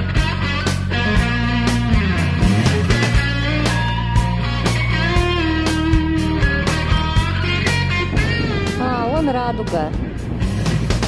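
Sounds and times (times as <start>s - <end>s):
rock music with guitar: 0.0s - 11.0s
wavering bending melody: 0.9s - 10.4s.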